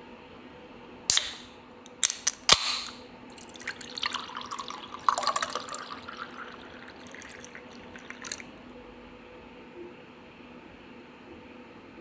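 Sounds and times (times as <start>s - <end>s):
can opening crack and hiss: 1.1s - 3.5s
drink pouring over ice: 3.3s - 8.6s.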